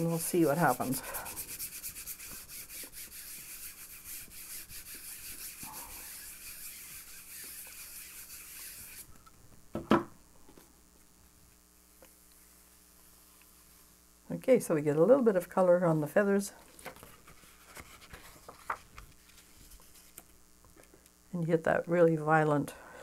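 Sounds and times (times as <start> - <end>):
paper rubbed with hand tool: 0.0 - 9.1, 17.0 - 20.2.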